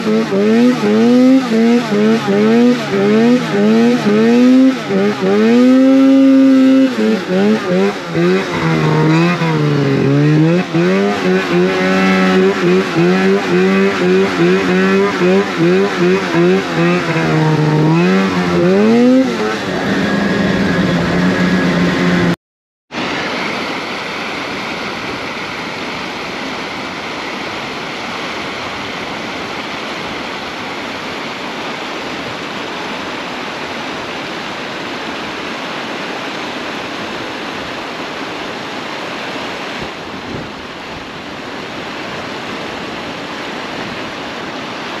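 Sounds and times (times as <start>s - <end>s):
snowmobile engine revving: 0.0s - 22.4s
wind on microphone: 39.6s - 45.0s.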